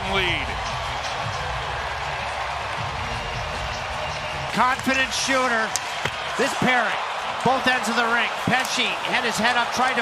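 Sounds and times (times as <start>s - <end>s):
arena crowd cheering and applauding: 0.0s - 10.0s.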